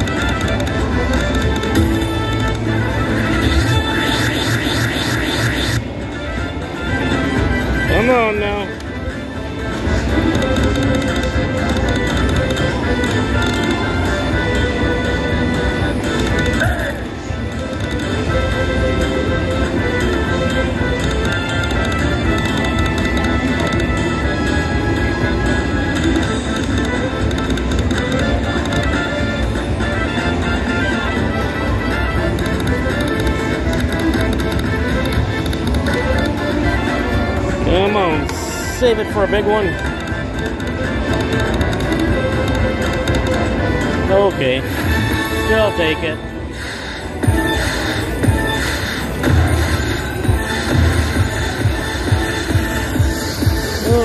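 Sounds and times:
casino background din: 0.0s - 54.0s
slot machine music and jingles: 0.0s - 54.0s.

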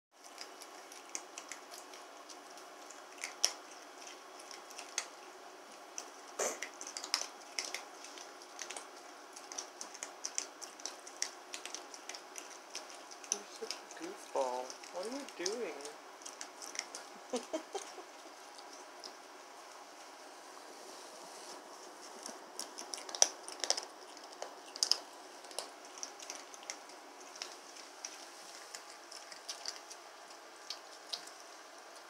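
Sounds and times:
person's voice: 13.3s - 16.0s.

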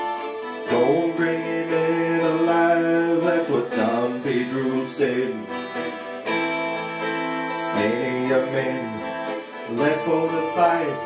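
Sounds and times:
man singing: 0.0s - 6.1s, 7.3s - 11.0s
acoustic guitar strumming: 0.0s - 11.0s.

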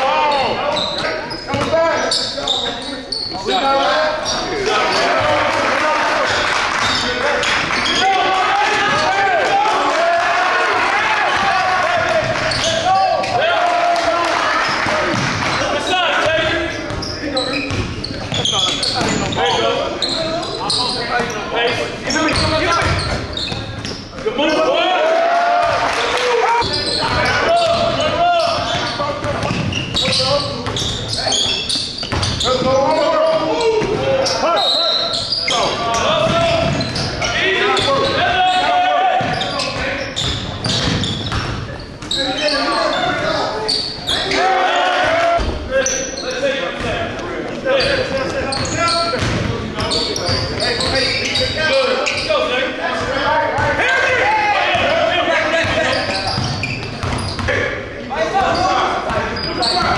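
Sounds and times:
echoing voices: 0.0s - 59.9s.

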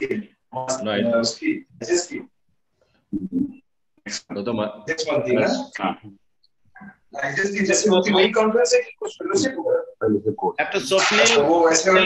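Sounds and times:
voices talking over video call: 0.0s - 12.0s.

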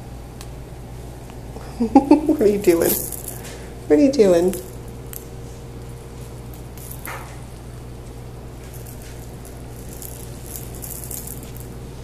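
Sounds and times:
steady low hum: 0.0s - 12.0s
toy rattling and rustling: 2.4s - 3.6s, 4.2s - 7.5s, 8.6s - 12.0s.

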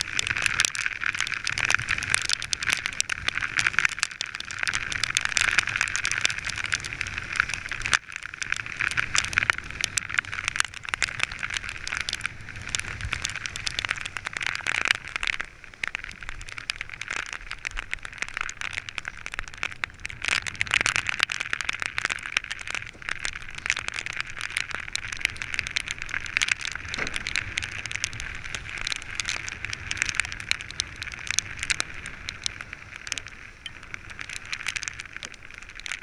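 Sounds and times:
crackling spray and droplets: 0.0s - 36.0s
rushing water and wind: 0.0s - 36.0s.

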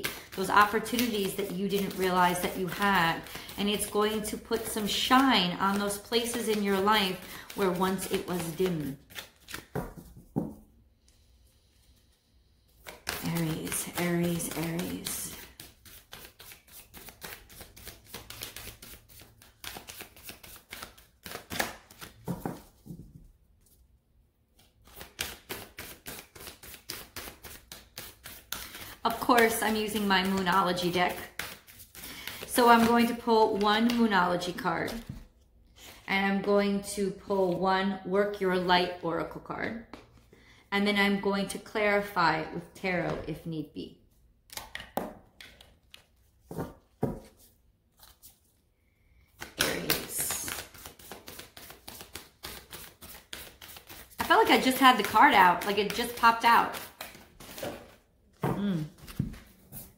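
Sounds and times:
cards being shuffled by hand: 0.0s - 10.6s, 12.7s - 23.0s, 24.6s - 35.2s, 44.5s - 48.6s, 49.2s - 58.0s.

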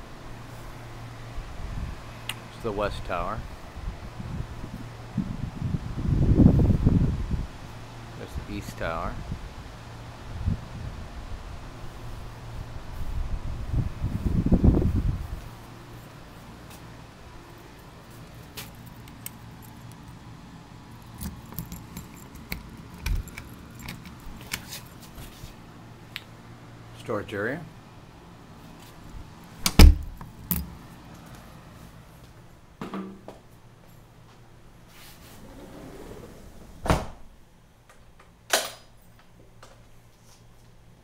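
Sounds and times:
keys jingling: 17.8s - 25.4s
door lock clicks: 21.2s - 24.7s, 29.6s - 30.7s
dull thump: 29.6s - 30.7s, 36.8s - 37.2s.

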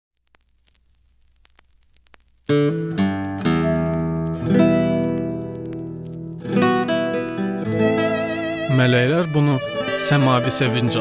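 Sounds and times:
faint static crackle: 0.1s - 11.0s.

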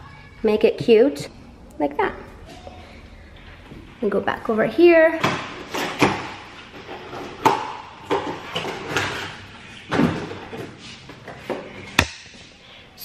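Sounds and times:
objects knocking and thumping: 5.1s - 12.4s.

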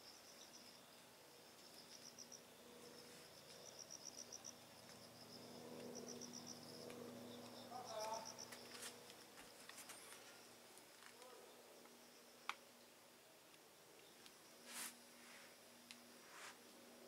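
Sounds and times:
insect chirping: 0.0s - 13.2s, 13.8s - 17.0s
faint steady hum: 0.0s - 17.0s.

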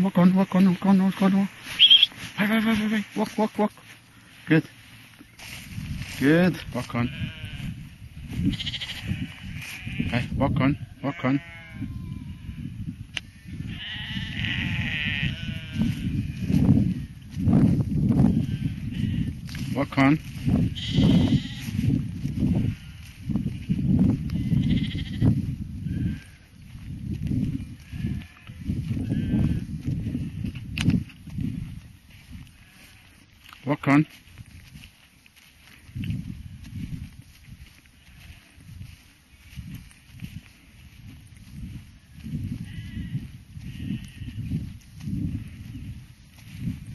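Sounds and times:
sheep bleating: 0.0s - 3.9s, 6.2s - 12.7s, 13.4s - 16.6s, 18.2s - 23.2s, 24.3s - 26.5s, 27.8s - 30.5s, 32.4s - 34.2s, 38.0s - 38.6s, 42.1s - 44.5s
low rumble on microphone: 5.4s - 33.0s, 35.9s - 46.9s.

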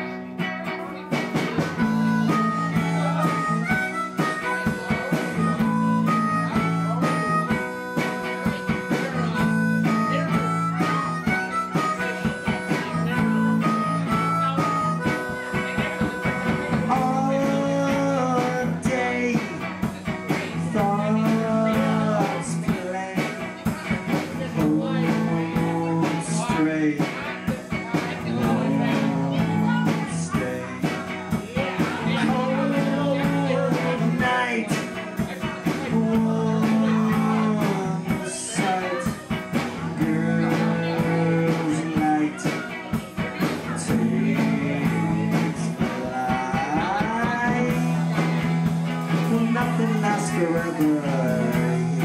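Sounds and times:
drums: 0.0s - 52.0s
guitar: 0.0s - 52.0s
low bass notes: 0.0s - 52.0s
person singing: 0.0s - 52.0s.

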